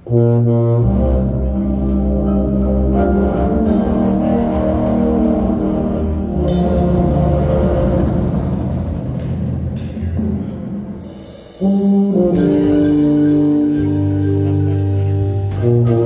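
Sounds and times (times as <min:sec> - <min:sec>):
sustained low chords: 0:00.0 - 0:11.0, 0:11.6 - 0:16.0
drum strokes: 0:03.6 - 0:16.0.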